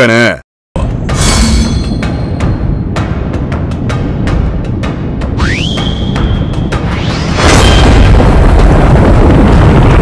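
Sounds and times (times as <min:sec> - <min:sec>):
heavy rumble: 0:06.1 - 0:10.0.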